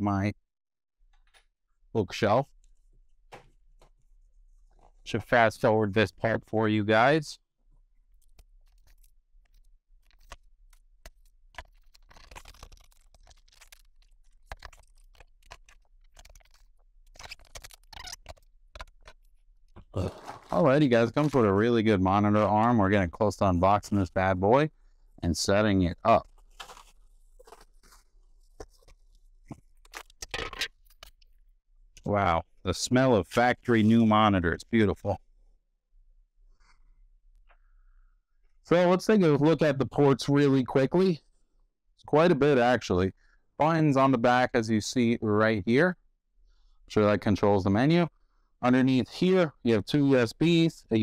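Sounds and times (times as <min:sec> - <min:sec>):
plastic bag crinkling: 0:08.1 - 0:19.3, 0:19.9 - 0:21.6, 0:26.1 - 0:31.2
plastic wrap rustling: 0:19.9 - 0:21.6, 0:26.1 - 0:30.7.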